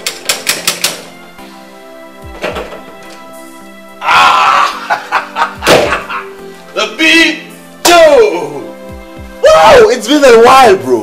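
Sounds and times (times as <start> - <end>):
background music: 0.0 - 11.0
door shutting thunk: 2.3 - 2.9, 5.6 - 6.1
person exclaiming: 4.0 - 5.0.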